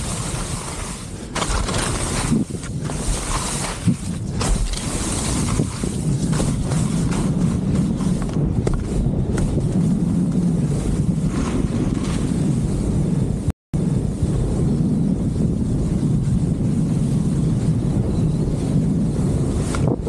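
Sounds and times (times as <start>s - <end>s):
skis scraping over slushy snow: 0.0s - 13.0s
wind on microphone: 0.0s - 20.0s.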